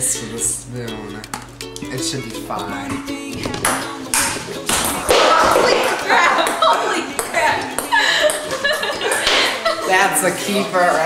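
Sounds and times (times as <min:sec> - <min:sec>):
people talking: 0:01.8 - 0:03.6, 0:05.4 - 0:07.8, 0:09.6 - 0:11.0
people laughing: 0:04.3 - 0:11.0.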